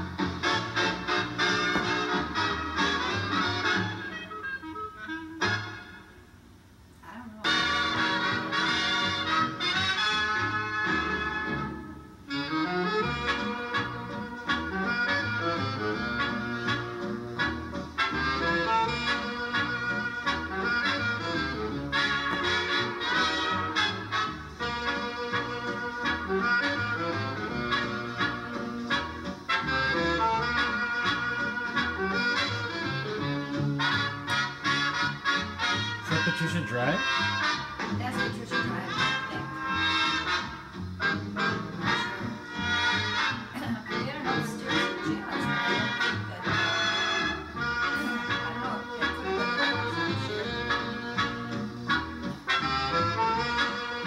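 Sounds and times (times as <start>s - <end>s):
instrumental music from television: 0.0s - 54.0s.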